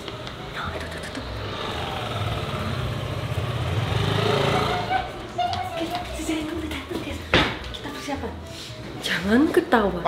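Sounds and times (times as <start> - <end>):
vehicle engine running: 0.0 - 5.3.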